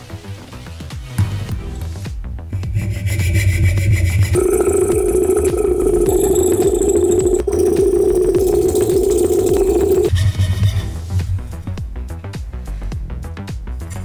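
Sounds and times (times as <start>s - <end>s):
background music: 0.0s - 14.0s
saw cutting wooden board: 2.6s - 8.5s.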